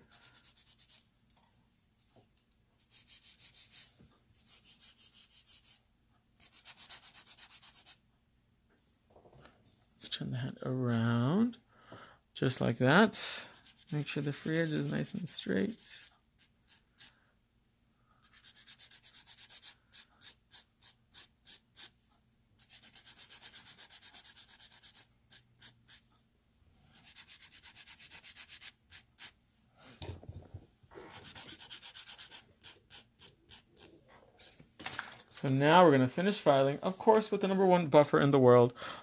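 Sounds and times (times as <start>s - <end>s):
nail file scraping: 0.1s - 1.0s, 6.4s - 8.0s, 18.2s - 22.0s, 22.6s - 26.0s, 26.9s - 29.4s, 31.1s - 34.0s.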